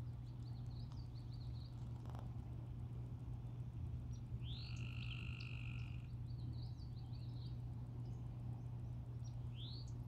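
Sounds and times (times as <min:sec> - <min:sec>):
steady low hum: 0:00.0 - 0:10.0
frog calling: 0:04.4 - 0:06.1.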